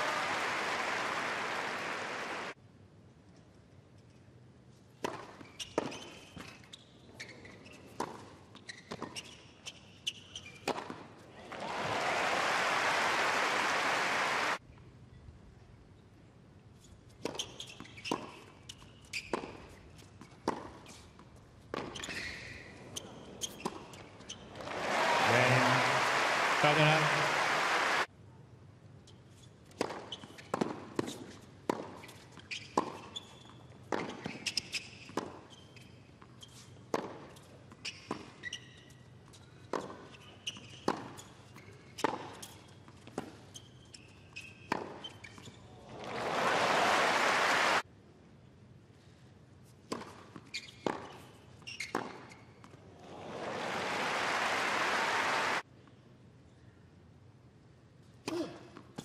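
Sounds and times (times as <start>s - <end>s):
crowd applause and cheering: 0.0s - 2.6s, 11.4s - 14.6s, 24.6s - 28.1s, 45.9s - 47.8s, 53.0s - 55.6s
tennis ball bouncing: 36.9s - 37.2s.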